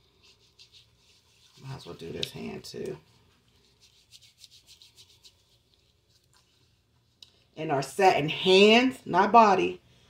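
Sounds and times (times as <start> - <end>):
wet hands rubbing scrub: 0.0 - 7.2.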